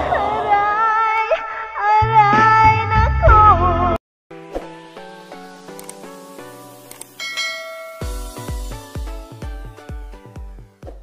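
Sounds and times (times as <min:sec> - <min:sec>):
electronic music with bass beat: 0:05.0 - 0:11.0
click: 0:05.7 - 0:06.0, 0:06.9 - 0:07.2
bell chime: 0:07.2 - 0:08.8.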